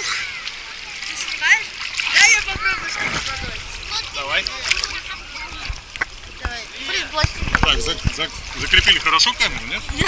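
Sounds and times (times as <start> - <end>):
children calling and chattering: 0.0 - 8.6
sea water splashing: 0.0 - 10.0.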